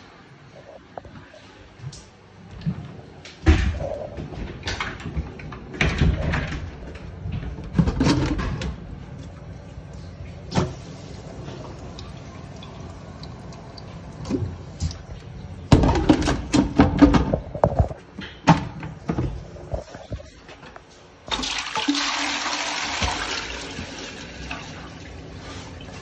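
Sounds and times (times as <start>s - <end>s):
toilet flushing: 10.5s - 16.8s, 21.3s - 26.0s.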